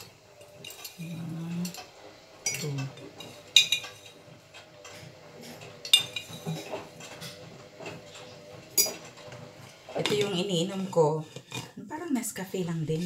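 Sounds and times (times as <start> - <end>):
glass jar spoon and mugs clinking: 2.4 - 4.2, 5.8 - 6.7, 8.8 - 9.1.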